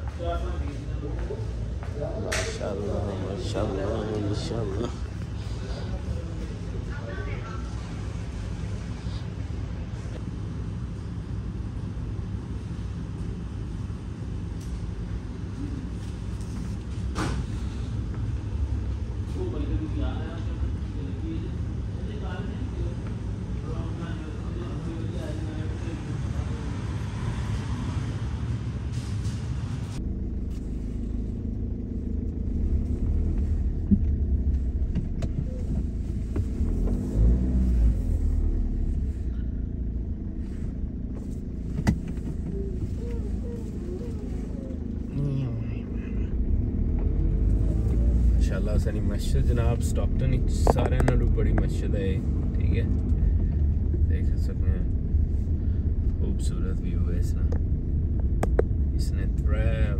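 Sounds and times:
steady low rumble: 0.0 - 59.9
voices talking: 0.2 - 9.4, 42.2 - 55.0
person speaking: 42.5 - 46.4.

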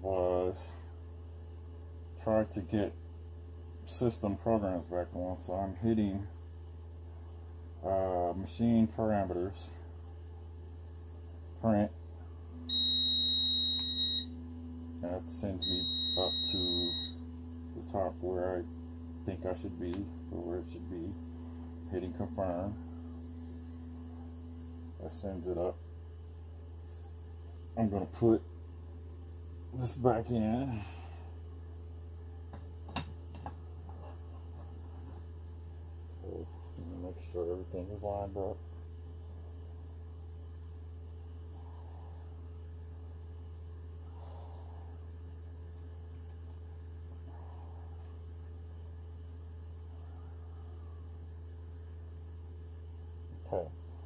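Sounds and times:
constant low hum: 0.0 - 54.0
stepper motor tone: 12.5 - 25.8.

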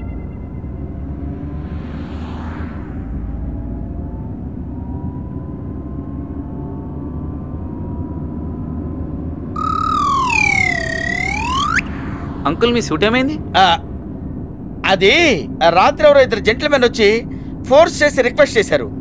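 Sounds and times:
faint thin rising tones: 0.0 - 5.0, 9.6 - 14.2
loud swooping tone: 0.0 - 5.4, 9.6 - 14.3.

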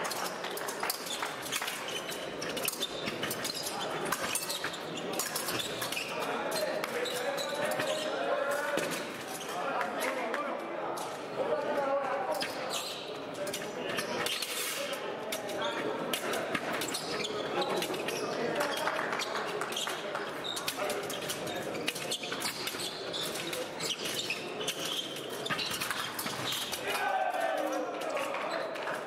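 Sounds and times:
scattered voices in a hall: 0.0 - 29.0.

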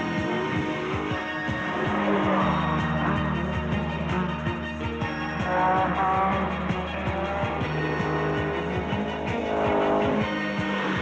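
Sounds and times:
rock music: 0.0 - 11.0.

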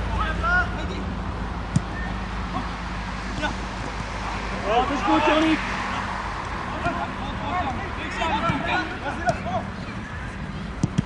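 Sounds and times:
players shouting calls: 1.8 - 10.3.

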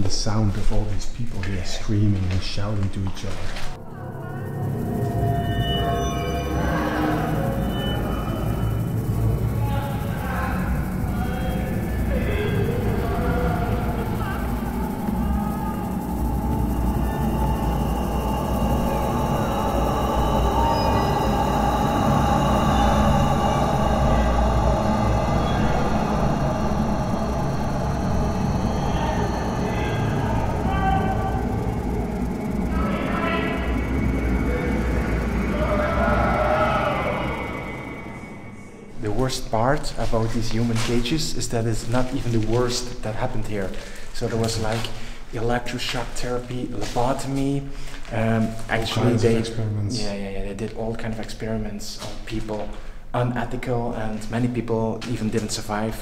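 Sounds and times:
eerie low drone music: 3.4 - 47.0, 47.6 - 50.5.

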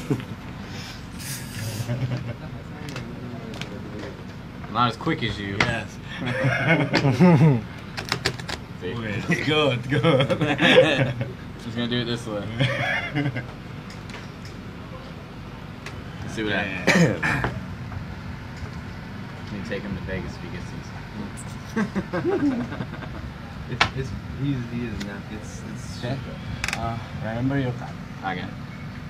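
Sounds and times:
low room hum: 0.0 - 29.0.

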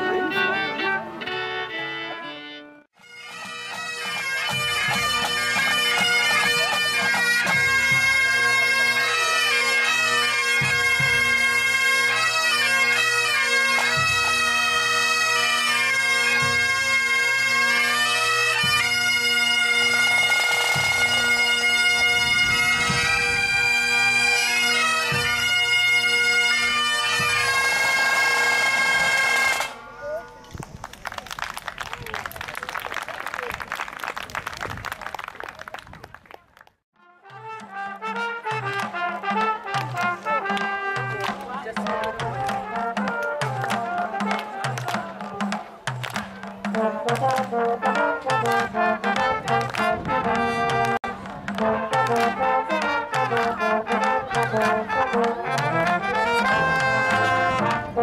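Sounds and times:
bagpipe band playing: 0.0 - 30.0, 37.1 - 58.0
brass band playing: 0.0 - 30.4, 37.0 - 58.0
drums: 3.1 - 8.6, 10.5 - 11.7, 13.7 - 14.9, 16.2 - 17.7, 18.4 - 23.9, 25.0 - 26.0, 26.6 - 30.9, 37.3 - 58.0
applause: 30.6 - 36.8, 39.8 - 42.6, 43.2 - 45.1, 45.9 - 46.3, 47.1 - 47.5, 48.4 - 48.8, 49.5 - 51.1, 52.0 - 52.4, 53.3 - 55.9.

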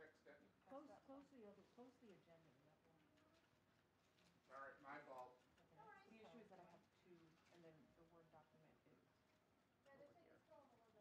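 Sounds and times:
faint background talking: 0.0 - 11.0.

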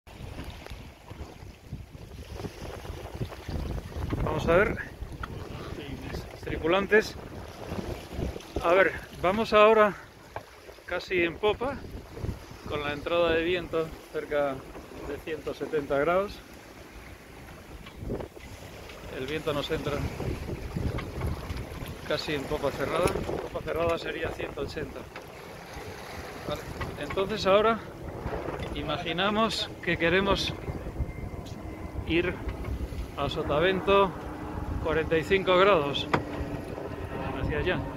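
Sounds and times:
wind buffeting microphone: 0.1 - 15.3, 16.1 - 37.9
sea rushing: 0.1 - 37.9.

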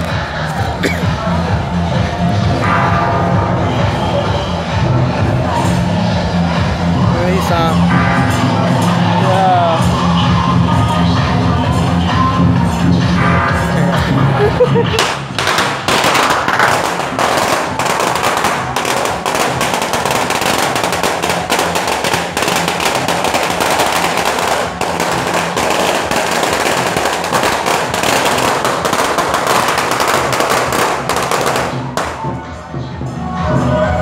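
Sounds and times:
firecrackers crackling: 14.7 - 32.4.

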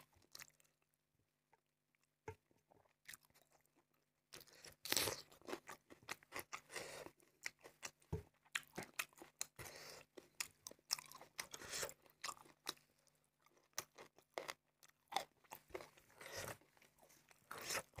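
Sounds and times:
close-miked chewing: 1.9 - 18.0.

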